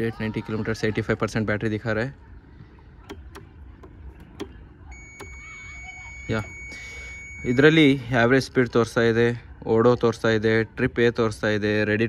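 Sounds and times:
sharp switch and lever clicks: 3.0 - 5.4
high-pitched electronic tone: 5.0 - 8.0.

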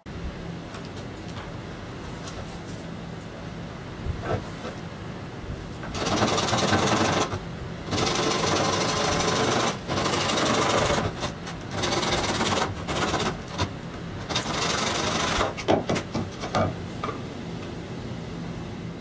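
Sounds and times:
hand saw cutting plastic pipe: 5.9 - 16.6.

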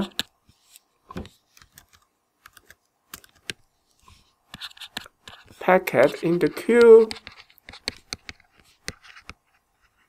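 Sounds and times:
stylus tapping drawing tablet: 1.1 - 3.6, 4.5 - 10.0.

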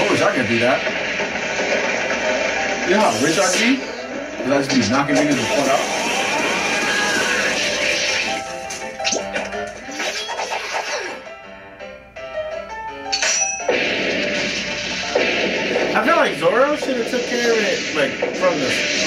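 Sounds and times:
loud crashing impacts: 0.0 - 4.4, 13.7 - 19.0
background music: 0.0 - 19.0.

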